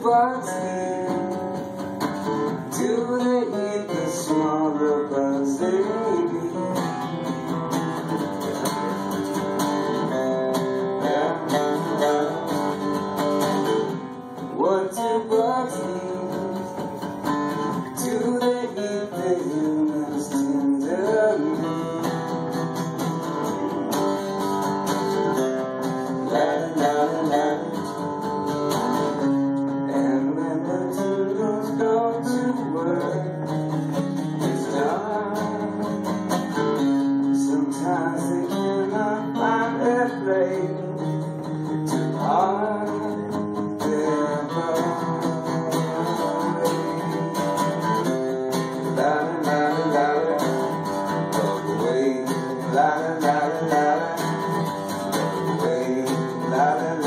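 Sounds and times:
acoustic guitars playing: 0.0s - 57.0s.

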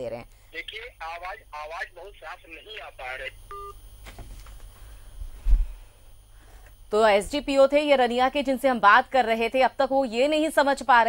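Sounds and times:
voice over telephone line: 0.6s - 3.4s
electronic telephone beep: 3.5s - 3.8s.

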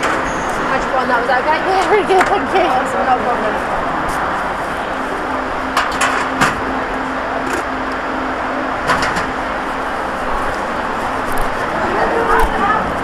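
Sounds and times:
low hum: 0.0s - 13.0s.

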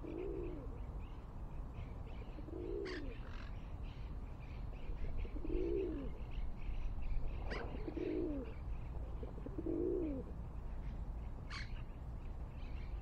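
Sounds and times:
dove cooing: 0.0s - 0.8s, 2.1s - 3.5s, 5.0s - 6.4s, 7.4s - 10.4s.

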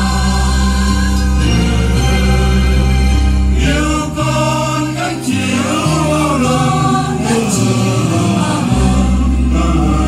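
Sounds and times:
choir singing a hymn: 0.0s - 10.0s
instrumental accompaniment: 0.0s - 10.0s.

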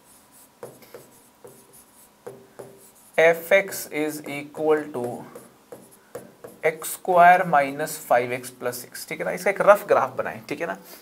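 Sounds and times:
pen strokes on board: 0.0s - 3.9s, 5.0s - 6.9s.

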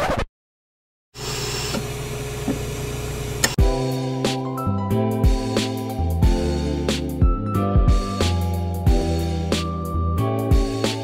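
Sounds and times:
tape rewind whir: 1.2s - 3.6s.

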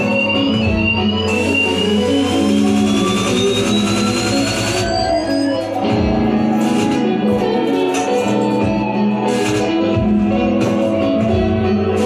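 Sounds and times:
electric guitar and electronic drones: 0.0s - 12.0s.

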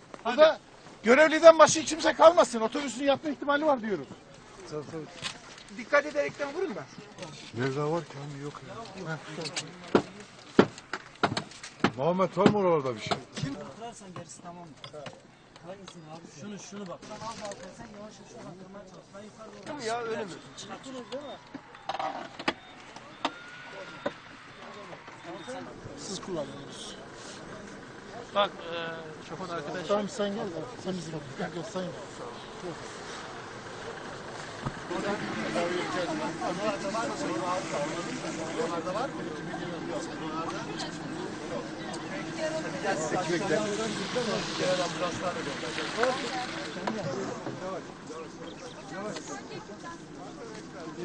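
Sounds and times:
people talking: 11.9s - 51.0s.

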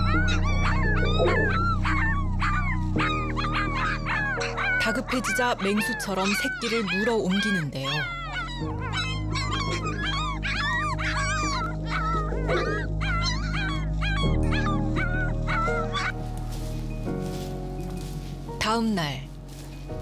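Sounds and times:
puppies whining and yelping: 0.0s - 16.9s
background music: 0.0s - 20.0s.

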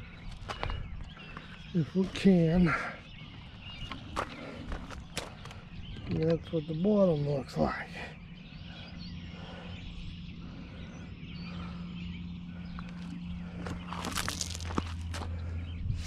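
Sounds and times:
steady low hum: 0.0s - 16.0s
footsteps on gravel: 0.1s - 6.4s, 12.7s - 15.6s.

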